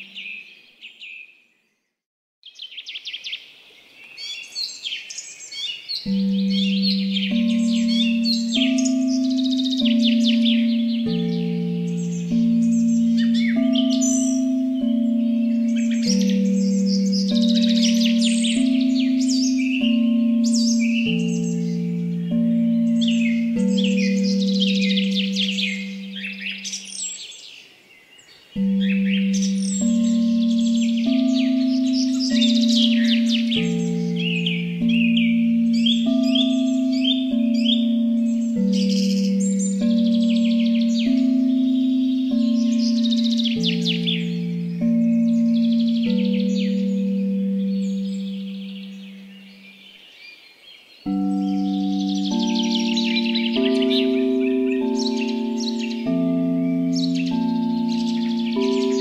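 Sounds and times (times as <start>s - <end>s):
songbirds chirping and trilling: 0.0s - 59.0s
singing bowl tones ringing: 6.0s - 27.2s, 28.6s - 49.8s, 51.0s - 59.0s.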